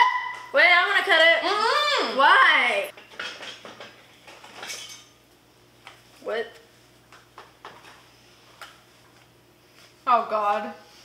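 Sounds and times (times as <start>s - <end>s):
kitchenware clinking: 2.9s - 5.2s.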